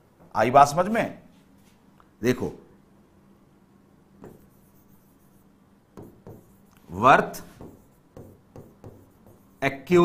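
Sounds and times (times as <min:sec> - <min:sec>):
pen writing on a screen: 0:04.2 - 0:10.0.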